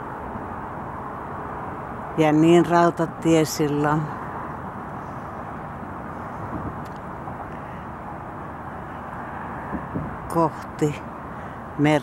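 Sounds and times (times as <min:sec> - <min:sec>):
distant road traffic hum: 0:00.0 - 0:12.0.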